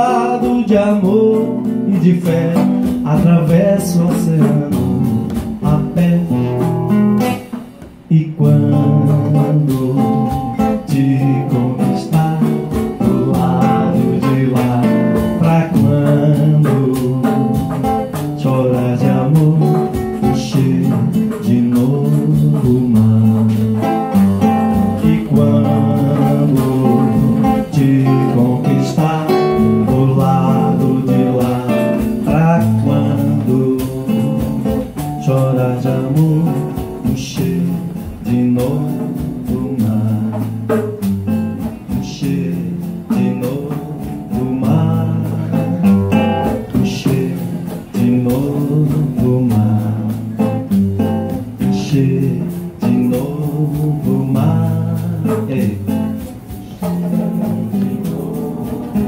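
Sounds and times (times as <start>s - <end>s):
acoustic guitar chords: 0.0s - 59.0s
band playing: 0.0s - 59.0s.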